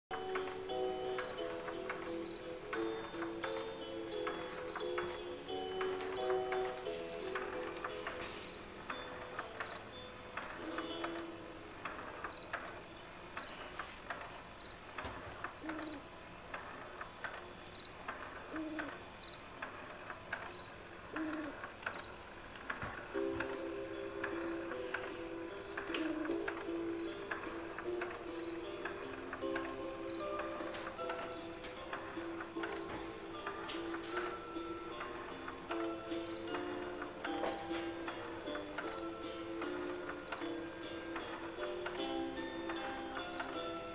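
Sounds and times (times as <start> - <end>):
electronic cricket chirps: 0.1 - 43.9
lullaby melody: 0.1 - 43.9
soft low hoot: 15.6 - 16.2, 18.4 - 19.1, 21.0 - 22.1, 25.8 - 26.9.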